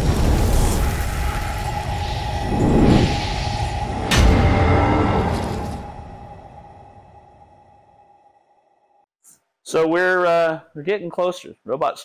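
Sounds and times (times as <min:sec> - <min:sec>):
rushing whooshes: 0:00.0 - 0:07.8
deep rumble: 0:00.0 - 0:08.1
sharp hit: 0:00.0 - 0:08.1
steady drone tone: 0:00.7 - 0:09.0.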